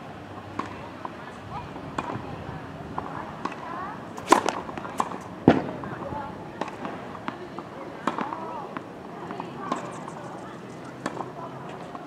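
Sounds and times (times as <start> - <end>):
faint distant voices: 0.0 - 12.0
racket striking tennis ball: 4.2 - 5.7, 8.0 - 8.4.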